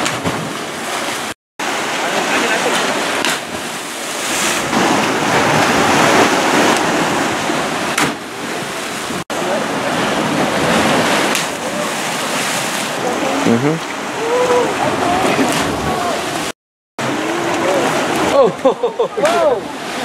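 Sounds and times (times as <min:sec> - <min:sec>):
ocean surf against rocks: 0:00.0 - 0:20.0.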